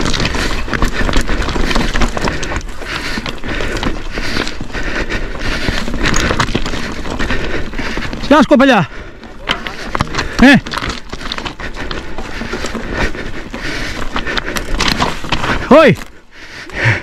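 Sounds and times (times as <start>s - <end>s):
bike rattling over rocks: 0.0s - 17.0s
tyres crunching on gravel: 0.0s - 17.0s.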